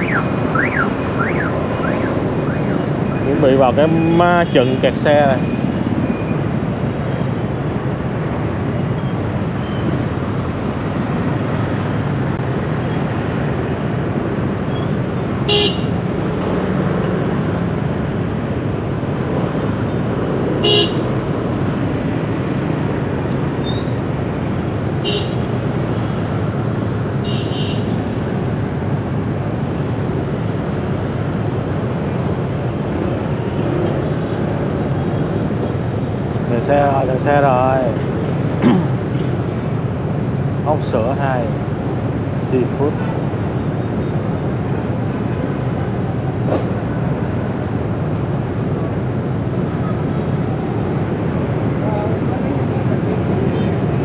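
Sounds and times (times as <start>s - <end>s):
traffic engines and road noise: 0.0s - 54.0s.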